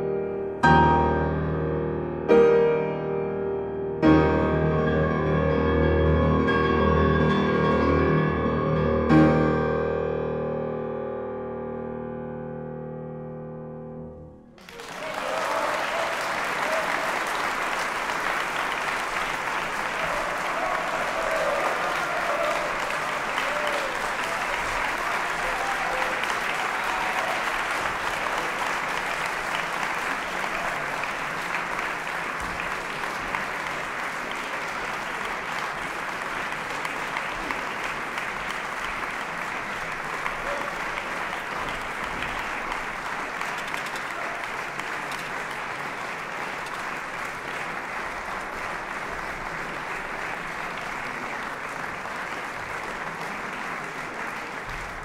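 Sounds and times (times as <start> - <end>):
audience applauding: 14.6 - 55.0.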